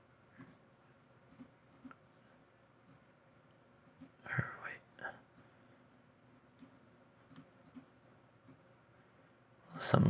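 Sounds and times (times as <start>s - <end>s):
computer mouse clicks: 0.4s - 0.6s, 1.3s - 2.0s, 2.8s - 3.1s, 6.6s - 8.6s.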